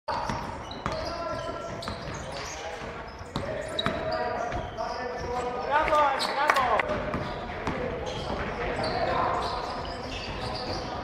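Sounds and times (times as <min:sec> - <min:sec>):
shoe squeaks: 0:00.1 - 0:06.5, 0:07.1 - 0:11.0
players' voices: 0:00.1 - 0:11.0
basketball bouncing on floor: 0:06.8 - 0:08.4.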